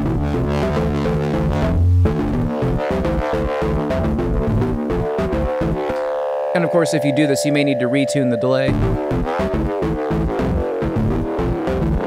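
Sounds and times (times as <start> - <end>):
distorted bass line: 0.0 - 12.0
ringing feedback delay: 6.0 - 9.1.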